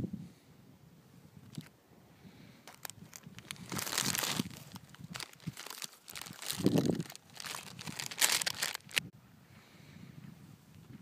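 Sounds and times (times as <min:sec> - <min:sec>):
rustling and crinkling handling noise: 0:02.6 - 0:09.0.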